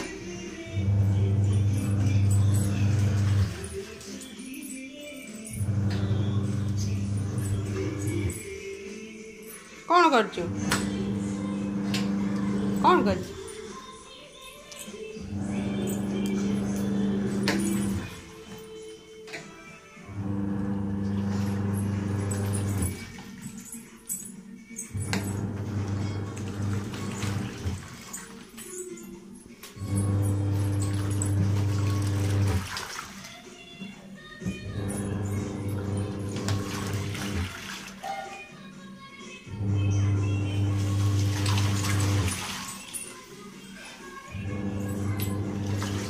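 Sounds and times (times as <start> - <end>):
washing machine motor humming: 0.0 - 4.0, 5.6 - 8.5, 10.4 - 13.5, 15.2 - 18.3, 20.1 - 23.4, 24.9 - 28.2, 29.8 - 32.9, 34.4 - 38.0, 39.5 - 42.8, 44.3 - 46.0.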